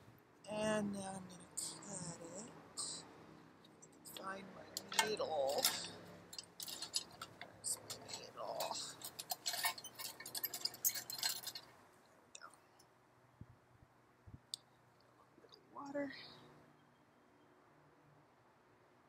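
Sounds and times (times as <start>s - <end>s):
small tools clicking and clinking: 4.1s - 11.8s.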